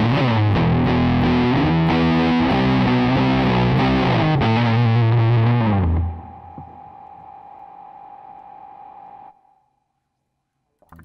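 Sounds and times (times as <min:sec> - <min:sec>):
distorted electric guitar chords: 0:00.0 - 0:07.5
amp hiss with faint tone: 0:04.7 - 0:10.5.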